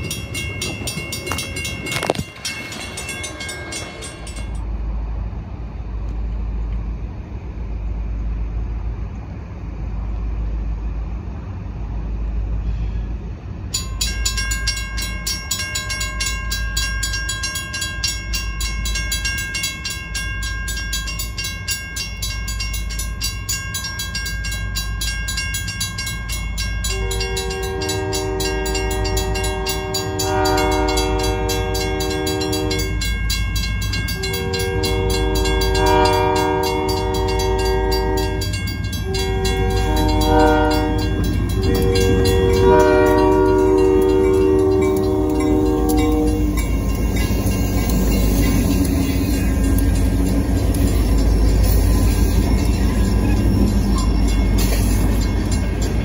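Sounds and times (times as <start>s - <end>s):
locomotive chime horn blasts: 0.0s - 4.5s, 24.8s - 56.0s
crossing bell ringing rapidly: 0.0s - 4.7s, 13.6s - 56.0s
low locomotive rumble: 0.0s - 56.0s.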